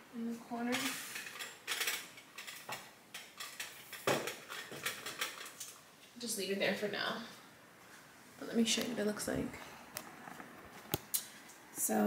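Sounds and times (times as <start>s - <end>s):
objects set down on counter: 4.0s - 5.4s.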